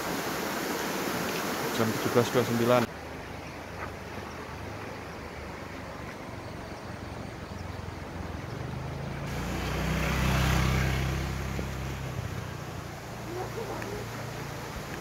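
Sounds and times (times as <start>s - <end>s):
motor scooter engine passing: 7.0s - 15.0s.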